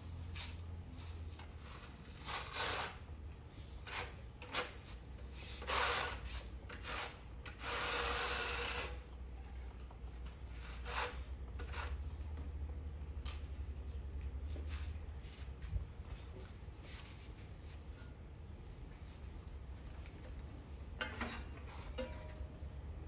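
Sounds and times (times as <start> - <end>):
trowel scraping on tile: 1.6 - 3.1, 3.8 - 9.0, 10.5 - 12.2
low steady hum: 8.4 - 23.0.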